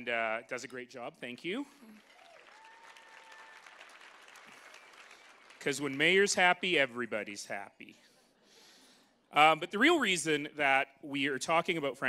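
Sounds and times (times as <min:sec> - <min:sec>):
faint audience applause: 0:01.9 - 0:06.4.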